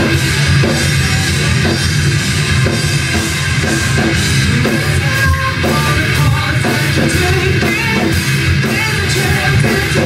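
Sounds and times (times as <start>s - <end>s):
drum kit with cymbals: 0.0s - 10.0s
electric guitars: 0.0s - 10.0s.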